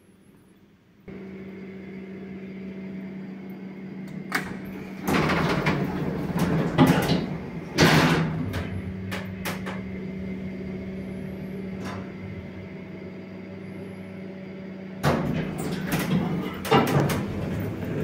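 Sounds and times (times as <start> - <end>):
steady electrical hum: 0.0 - 18.0
lift doors rattling shut: 4.2 - 13.0, 15.0 - 18.0.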